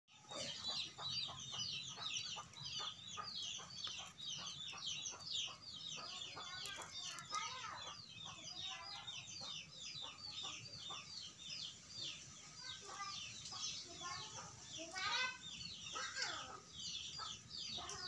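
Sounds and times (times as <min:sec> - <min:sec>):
chickens calling: 0:00.1 - 0:18.0
chickens clucking: 0:00.1 - 0:18.0.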